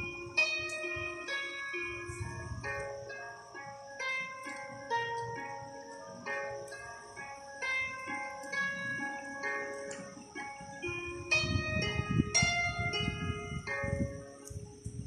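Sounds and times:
harp music: 0.0 - 15.0.

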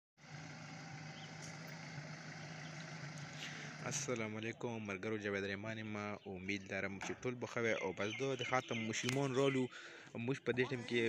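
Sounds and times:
truck engine running: 0.2 - 7.2.

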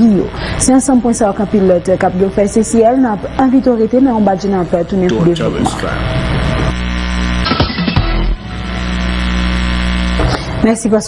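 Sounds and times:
electrical mains hum: 0.0 - 7.4.

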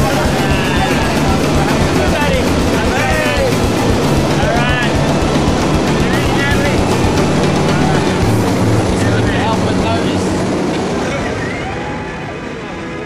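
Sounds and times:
air rushing in cabin: 0.0 - 12.6
airplane engines droning: 0.0 - 13.0.

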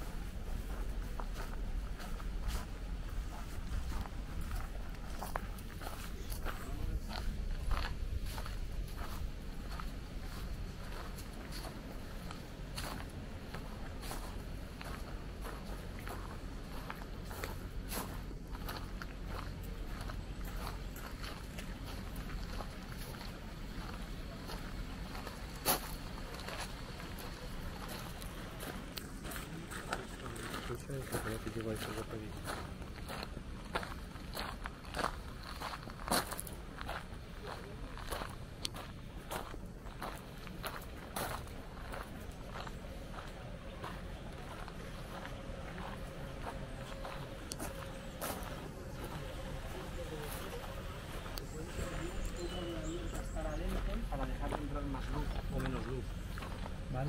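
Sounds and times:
faint distant voices: 0.0 - 57.0
footsteps on gravel: 0.0 - 57.0.

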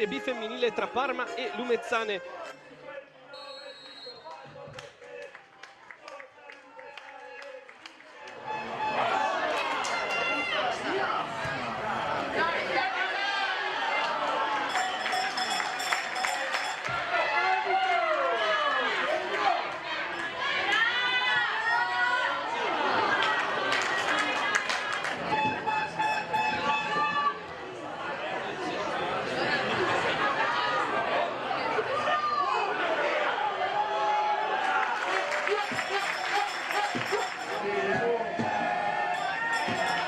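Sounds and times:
chatter: 18.8 - 33.5.

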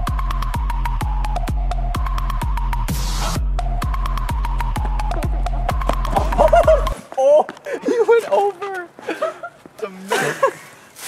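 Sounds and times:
deep kick drum: 0.0 - 7.0
electronic dance music: 0.0 - 7.0
person speaking: 6.1 - 9.1, 9.7 - 10.7.

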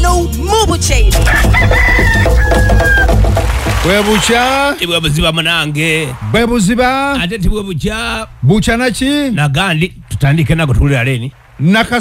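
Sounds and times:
rooster crowing: 1.2 - 3.3.

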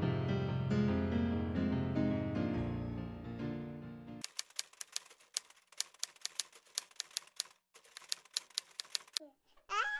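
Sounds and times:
keyboard music: 0.0 - 4.2
typewriter key clicks: 4.2 - 9.2.

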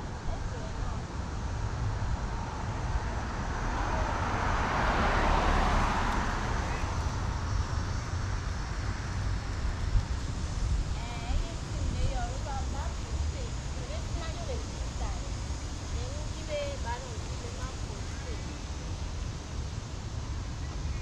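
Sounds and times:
low traffic rumble: 0.0 - 21.0
passing car road noise: 0.0 - 21.0.

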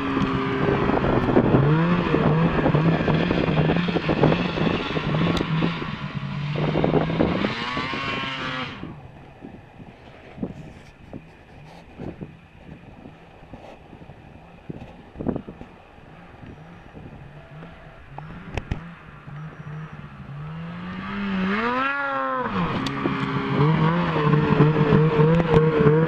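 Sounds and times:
snowmobile engine droning: 0.0 - 26.0.

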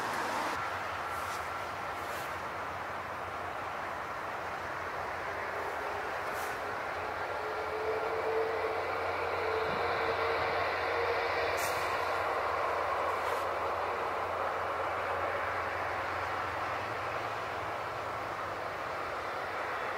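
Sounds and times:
distant jet engines rumbling: 0.0 - 19.9.

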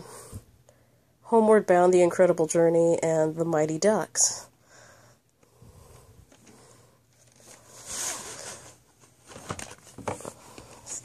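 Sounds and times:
plastic case scraping rustle: 7.2 - 11.0.

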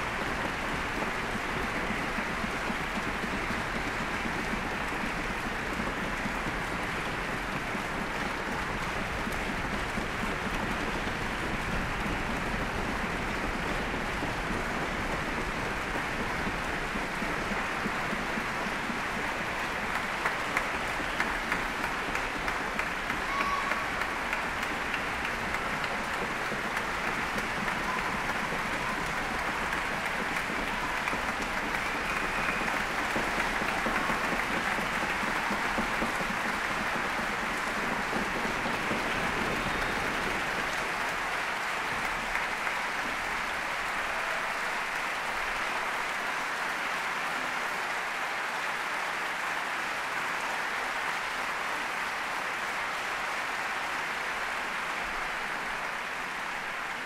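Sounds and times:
audience applauding: 0.0 - 57.0.

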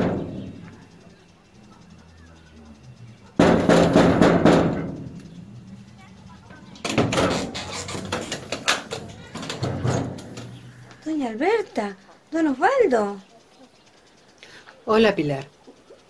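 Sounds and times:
door rattling: 0.0 - 0.8, 3.4 - 5.5, 6.5 - 10.7
knocking on door: 3.4 - 5.2.

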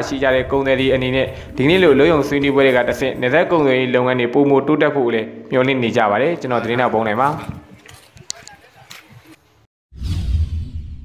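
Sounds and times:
whoosh with deep rumble: 0.0 - 3.7, 9.9 - 11.0.

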